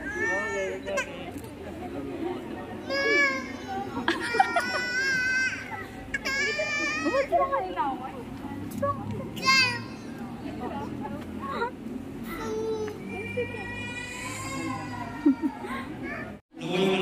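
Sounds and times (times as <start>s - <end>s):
toddler crying: 12.3s - 16.4s.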